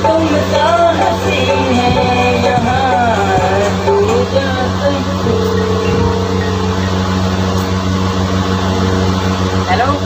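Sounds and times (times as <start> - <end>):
steady low hum: 0.0 - 10.0
faint high tone: 5.2 - 8.3.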